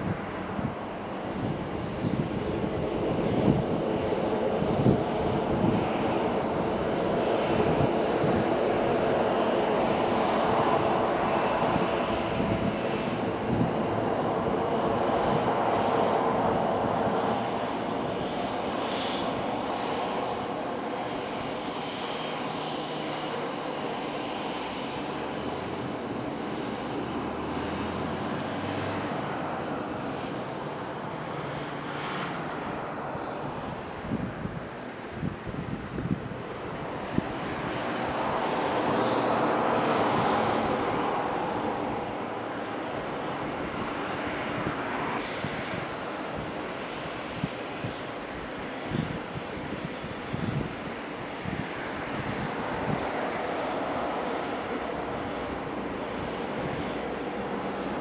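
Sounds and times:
jet engines at taxi power: 0:00.0 - 0:58.0.

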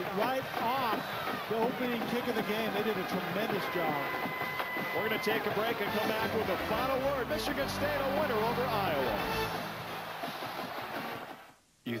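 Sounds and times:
man speaking loudly: 0:05.0 - 0:09.6.

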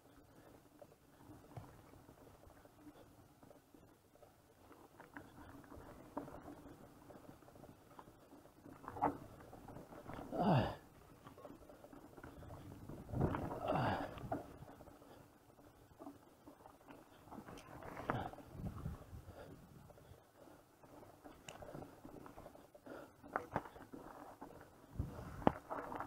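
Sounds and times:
bike rattling and knocking: 0:04.9 - 0:20.2, 0:20.8 - 0:26.0
rushes of wind: 0:12.5 - 0:14.6, 0:17.8 - 0:20.0, 0:24.9 - 0:26.0.

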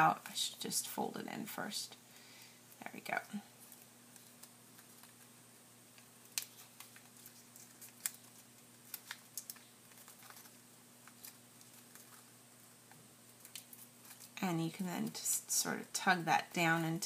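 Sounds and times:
paper crinkling and clicking: 0:03.6 - 0:05.3, 0:06.0 - 0:14.4.

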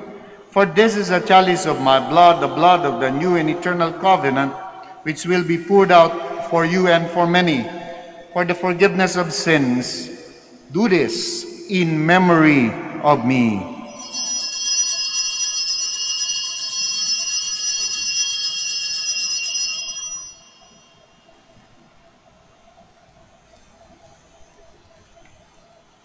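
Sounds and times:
small bells jingling: 0:13.8 - 0:21.5.

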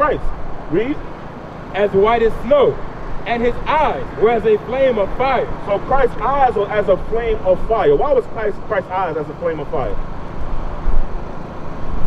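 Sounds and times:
rumble of passing cars: 0:00.0 - 0:12.0.

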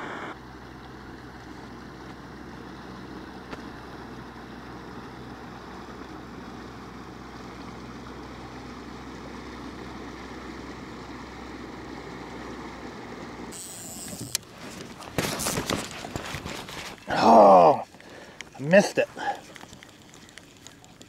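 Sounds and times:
distant motorboat engine droning: 0:00.0 - 0:21.0
light wind: 0:00.0 - 0:21.0
handling noise: 0:13.7 - 0:21.0.

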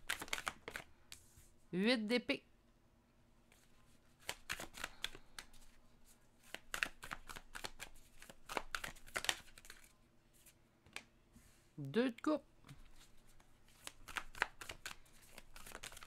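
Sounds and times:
cards being shuffled: 0:00.0 - 0:01.3, 0:03.5 - 0:11.1, 0:12.7 - 0:16.0.

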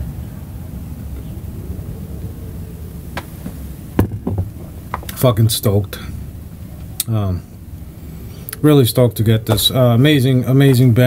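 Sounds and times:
steady low hum: 0:00.0 - 0:11.0
loud sharp knock: 0:04.0 - 0:04.5.

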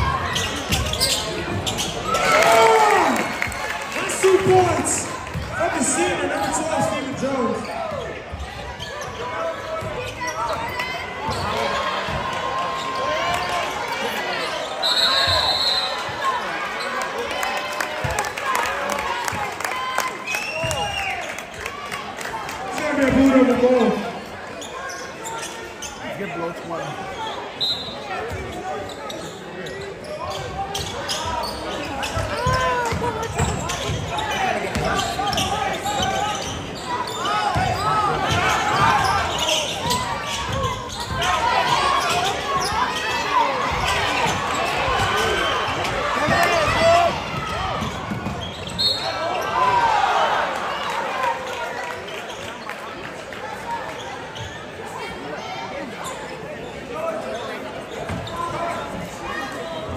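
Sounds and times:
crowd chatter and shouting: 0:00.0 - 0:59.9
referee's whistle: 0:14.7 - 0:16.1, 0:27.5 - 0:28.1, 0:48.4 - 0:49.3.

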